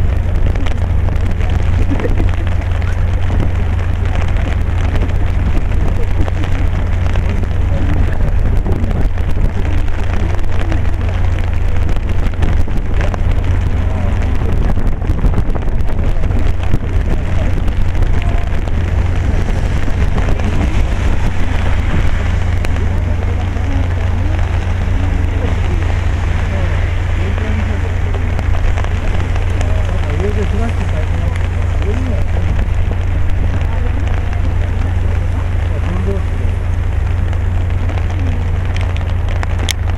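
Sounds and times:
constant low rumble: 0.0s - 39.9s
rain drops crackling: 0.0s - 39.9s.

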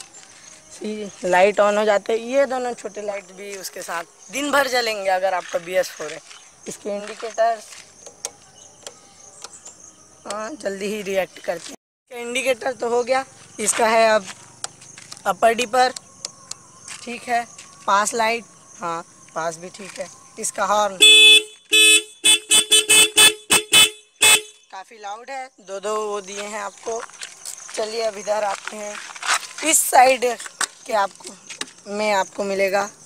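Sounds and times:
motorcycle horn toots: 21.0s - 24.7s.

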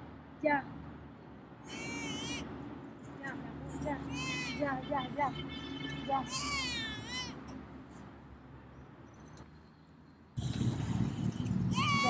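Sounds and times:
steady outdoor noise: 0.0s - 12.0s.

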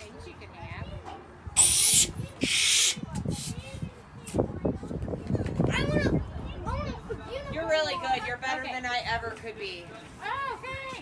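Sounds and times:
balloon squeaking and rubbing: 1.6s - 3.5s
hand balloon pump hissing: 1.6s - 3.6s.

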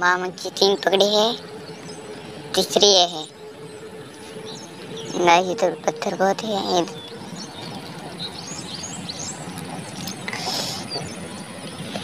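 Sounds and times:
small birds chirping: 0.1s - 12.0s.

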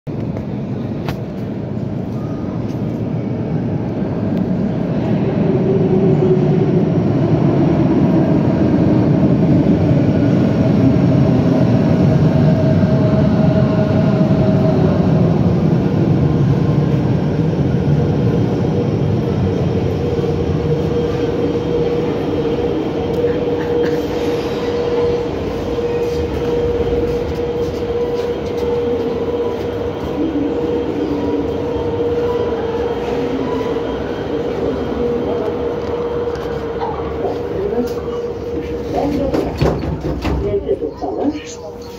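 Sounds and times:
standing train humming: 0.1s - 41.9s
metro train braking: 0.6s - 41.9s.

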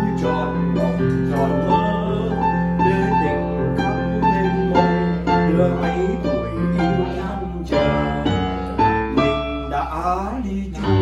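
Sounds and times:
digital piano playing: 0.0s - 11.0s.

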